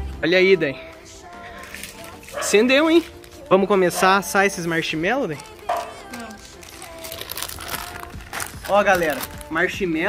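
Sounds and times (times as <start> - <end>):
plastic bag crinkling: 1.5 - 10.0.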